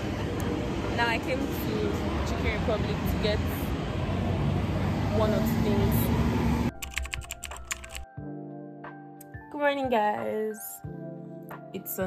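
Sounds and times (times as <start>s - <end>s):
loud street noise: 0.0s - 6.8s
keyboard typing clicks: 6.7s - 8.1s.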